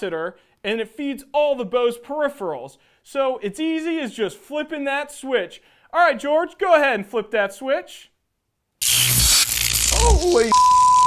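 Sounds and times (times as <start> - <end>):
electric shock static hiss: 8.8 - 11.0.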